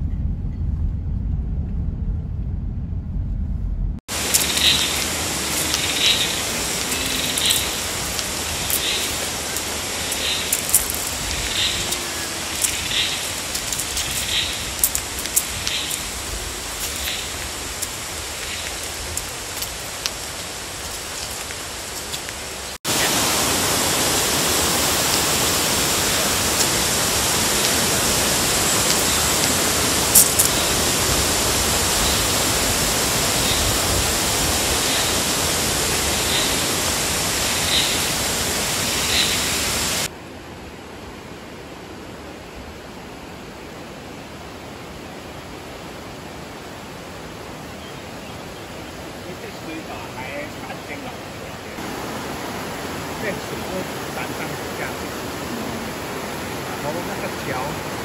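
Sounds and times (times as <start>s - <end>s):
flowing water rushing: 4.1s - 58.0s.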